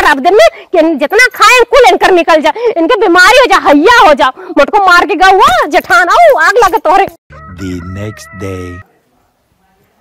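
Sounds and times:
rooster crowing: 7.3s - 8.9s.

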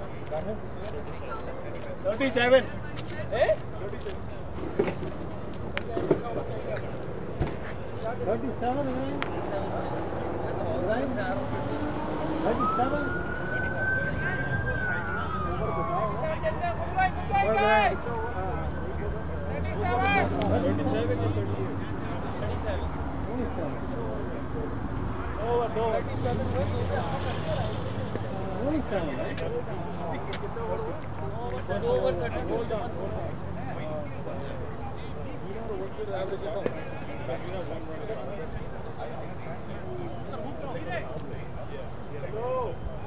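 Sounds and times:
people talking: 0.0s - 43.0s
siren wailing: 11.4s - 20.0s.

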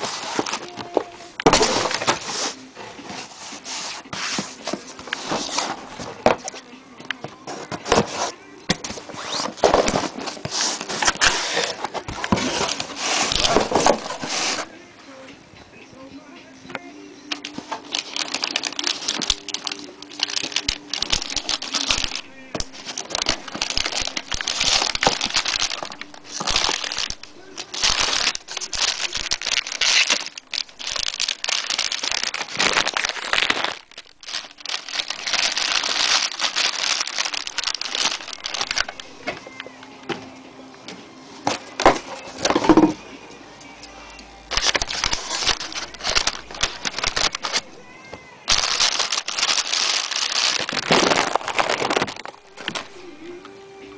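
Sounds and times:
plastic bags crinkling: 0.0s - 3.3s, 4.2s - 6.6s, 7.5s - 14.7s, 17.3s - 39.8s, 41.4s - 43.0s, 44.5s - 53.4s.

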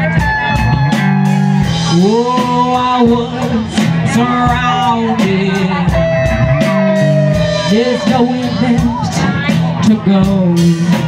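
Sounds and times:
drum and cymbal hits: 0.0s - 11.0s
electric guitars and bass: 0.0s - 11.0s.

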